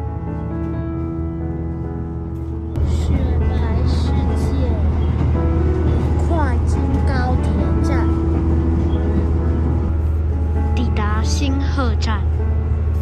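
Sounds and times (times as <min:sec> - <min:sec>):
music: 0:00.0 - 0:13.0
railcar low rumble: 0:00.0 - 0:13.0.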